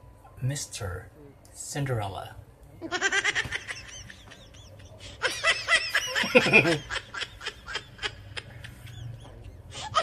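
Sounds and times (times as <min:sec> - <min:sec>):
man snickering: 0:06.1 - 0:07.1.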